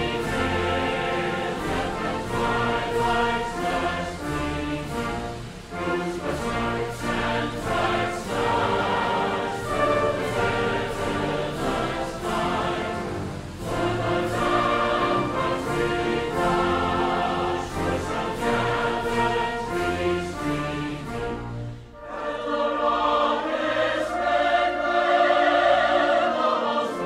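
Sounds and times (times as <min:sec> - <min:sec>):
choir singing with accompaniment: 0:00.0 - 0:27.0.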